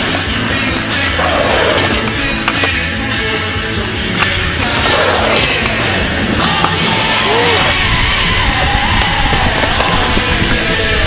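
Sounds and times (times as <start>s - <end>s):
skateboard clacks: 0.0s - 7.2s, 8.3s - 11.0s
rock music: 0.0s - 10.0s
skateboard wheels rolling on concrete: 0.0s - 11.0s.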